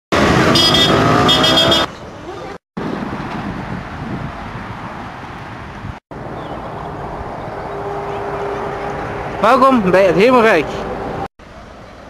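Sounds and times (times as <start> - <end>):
vehicle engines running: 5.0 - 12.0.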